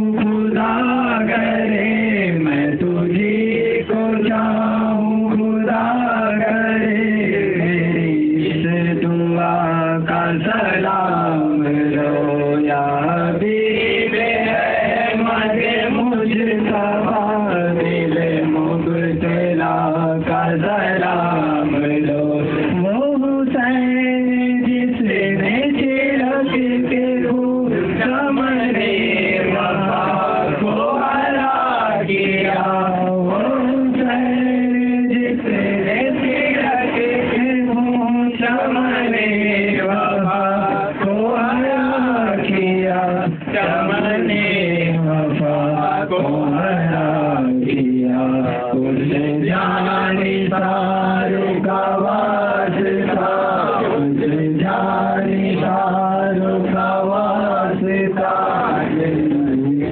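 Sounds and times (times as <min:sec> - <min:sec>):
man chanting: 0:00.0 - 0:59.9.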